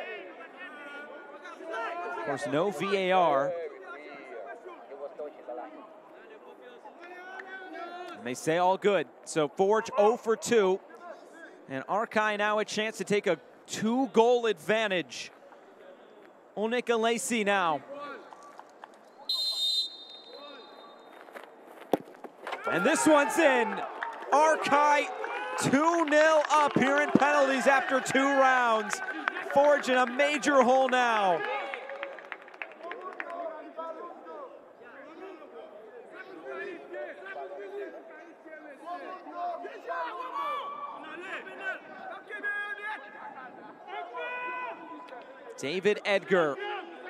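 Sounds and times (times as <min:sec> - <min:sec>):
referee's whistle blast: 0:19.2 - 0:21.1
men shouting and calling out: 0:22.5 - 0:31.8.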